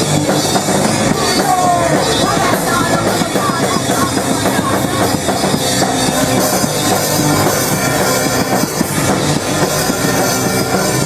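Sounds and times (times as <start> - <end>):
bass guitar: 0.0 - 11.0
drum kit: 0.0 - 11.0
electric guitar: 0.0 - 11.0.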